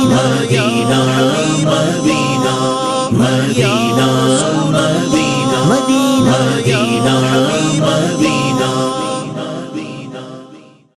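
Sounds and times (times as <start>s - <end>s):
men singing unaccompanied: 0.0s - 10.7s
droning chorus: 0.0s - 10.9s.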